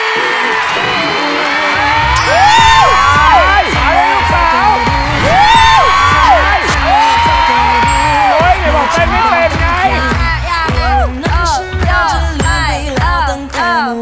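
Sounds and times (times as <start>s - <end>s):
upbeat dance music: 0.0s - 14.0s
heavy bass beat: 1.8s - 13.4s.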